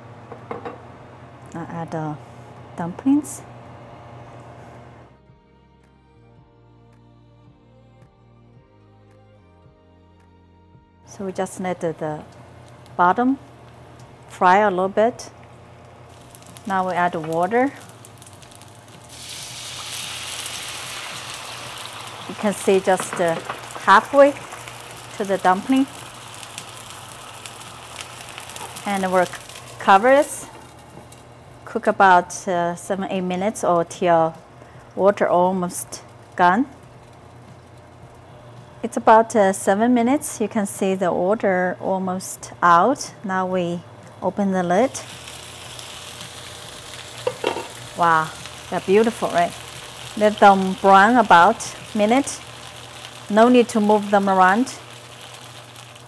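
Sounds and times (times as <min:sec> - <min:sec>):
frying pan sizzling: 0:11.5 - 0:34.0, 0:44.5 - 0:56.0.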